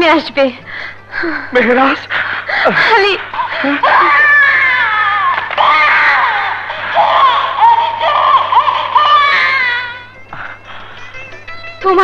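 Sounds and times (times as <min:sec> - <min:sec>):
infant crying: 0:03.4 - 0:10.2.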